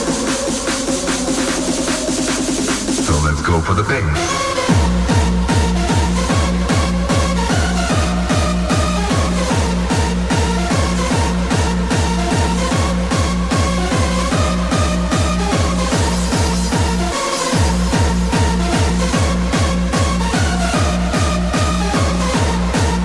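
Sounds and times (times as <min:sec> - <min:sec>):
techno kick drum: 0:00.0 - 0:23.0
synth melody: 0:03.0 - 0:09.7.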